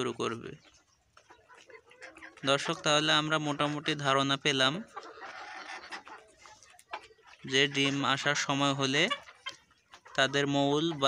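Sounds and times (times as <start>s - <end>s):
chickens clucking faintly: 0.0s - 11.0s.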